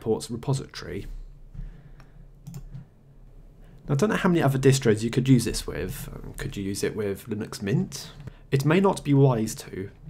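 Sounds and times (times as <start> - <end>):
computer mouse clicks: 2.0 - 2.9.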